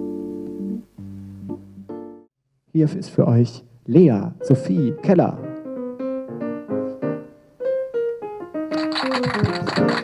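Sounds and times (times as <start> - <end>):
keyboard piano melody: 0.0 - 2.3, 4.3 - 10.0
recorded applause: 8.7 - 10.0.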